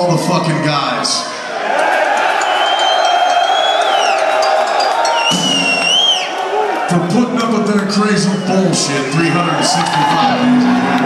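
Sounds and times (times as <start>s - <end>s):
concert crowd cheering: 0.0s - 11.0s
shrill whistles: 2.3s - 6.4s.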